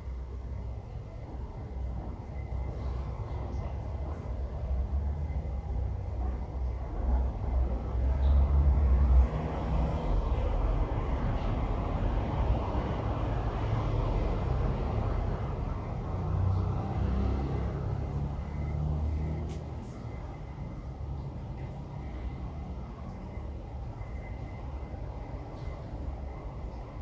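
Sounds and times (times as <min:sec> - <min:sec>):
low outdoor rumble: 0:00.0 - 0:27.0.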